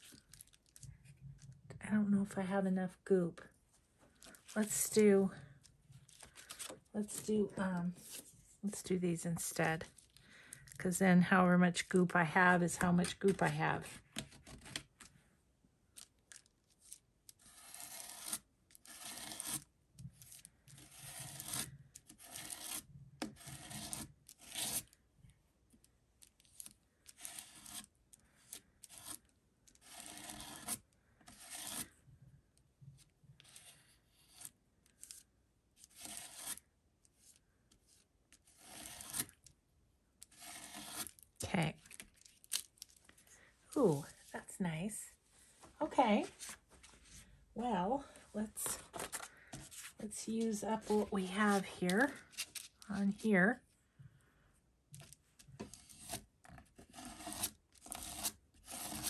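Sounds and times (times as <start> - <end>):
palette knife scraping paste: 28.5 - 31.9, 40.2 - 41.2, 55.7 - 59.0.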